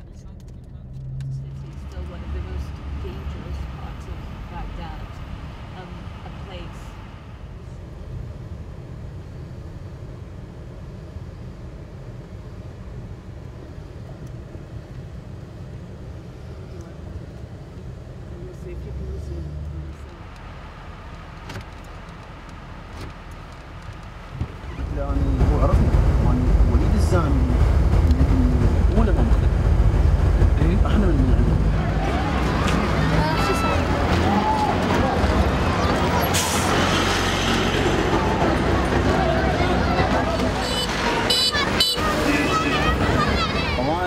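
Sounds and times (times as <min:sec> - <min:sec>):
engine and road rumble: 0:00.0 - 0:44.0
faint voices: 0:30.6 - 0:44.0.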